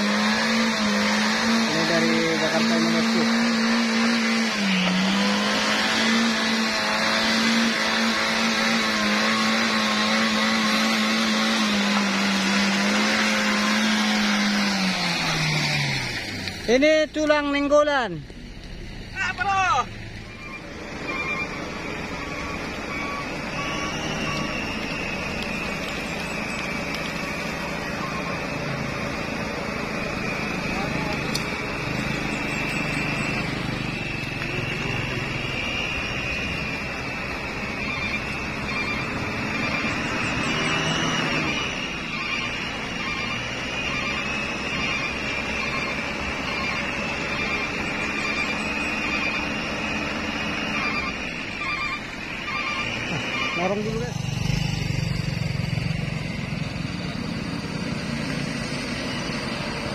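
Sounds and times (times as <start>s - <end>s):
truck engine labouring: 0.0s - 59.9s
wheels turning in mud: 0.0s - 59.9s
voices: 0.2s - 8.8s, 16.6s - 57.6s.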